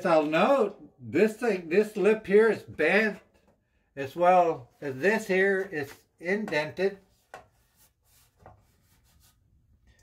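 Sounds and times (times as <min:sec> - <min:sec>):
hand brushing sheet metal: 0:06.8 - 0:09.5.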